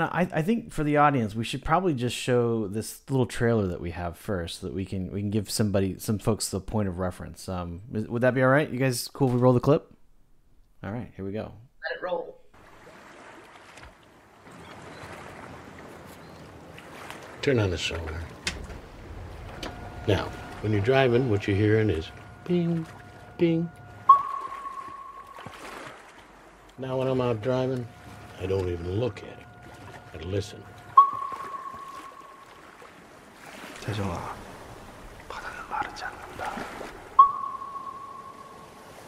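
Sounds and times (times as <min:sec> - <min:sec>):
fishing boat on water: 0:12.5 - 0:39.0
sonar ping: 0:19.5 - 0:25.9, 0:26.8 - 0:32.8, 0:37.1 - 0:38.9.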